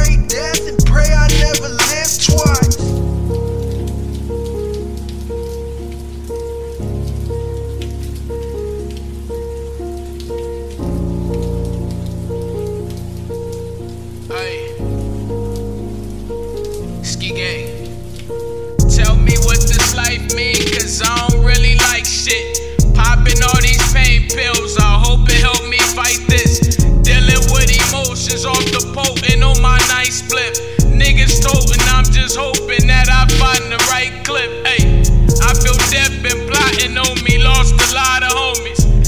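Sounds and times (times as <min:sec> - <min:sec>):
hip hop drums: 0:00.0 - 0:02.9, 0:18.8 - 0:34.1, 0:34.8 - 0:39.0
sustained synth chords: 0:00.0 - 0:17.2
rain-like hiss: 0:00.0 - 0:39.0.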